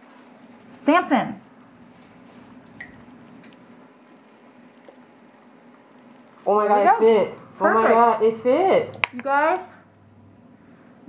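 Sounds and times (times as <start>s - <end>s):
liquid trickling: 2.5s - 3.7s.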